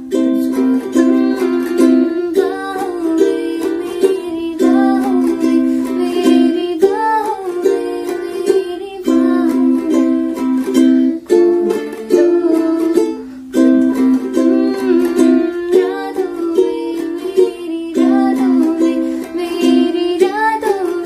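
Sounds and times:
ukulele strumming: 0:00.0 - 0:21.0
woman singing: 0:00.0 - 0:21.0.

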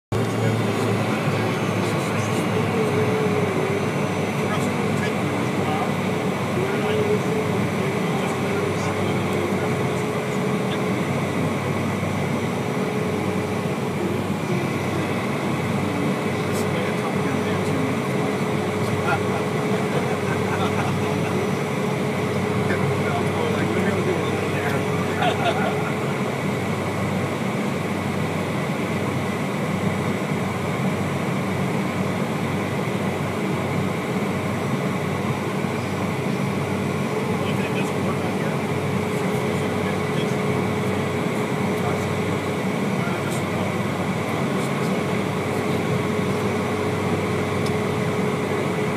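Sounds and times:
jet engines whining inside cabin: 0:00.1 - 0:48.9.

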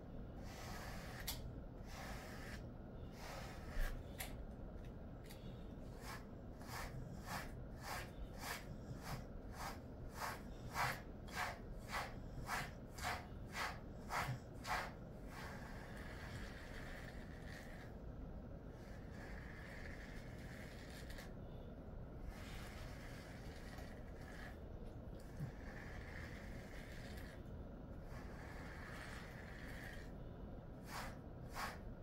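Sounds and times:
brush strokes through dog fur: 0:05.9 - 0:17.9, 0:30.8 - 0:32.0.

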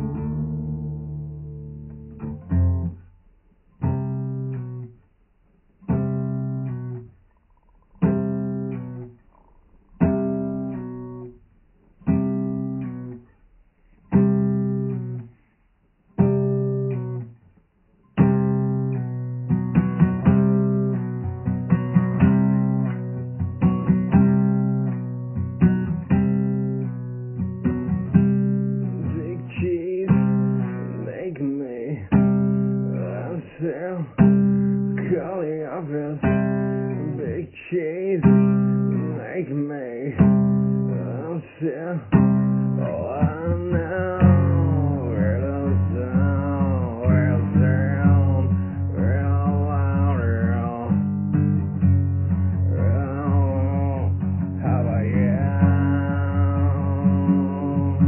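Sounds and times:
plucked string instrument chords: 0:00.0 - 0:05.1, 0:05.8 - 0:15.4, 0:16.2 - 0:17.4, 0:18.1 - 0:58.0.

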